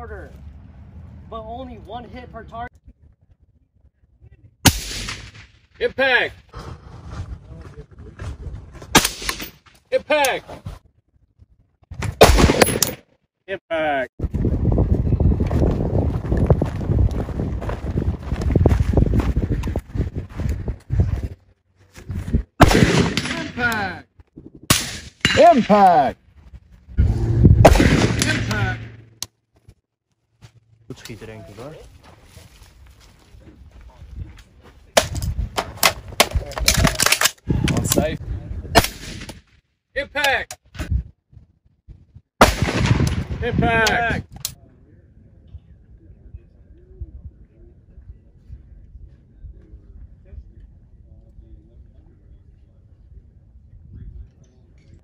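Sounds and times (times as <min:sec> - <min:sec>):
rifle shots: 0:04.6 - 0:05.5, 0:08.9 - 0:09.6, 0:12.2 - 0:13.0, 0:22.6 - 0:23.8, 0:24.7 - 0:25.8, 0:27.6 - 0:29.0, 0:38.8 - 0:39.4, 0:42.4 - 0:43.4.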